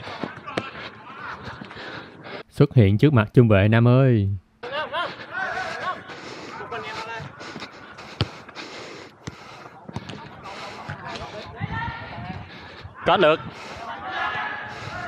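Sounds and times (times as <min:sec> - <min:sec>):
players calling out: 0:00.0 - 0:02.4, 0:04.6 - 0:15.0.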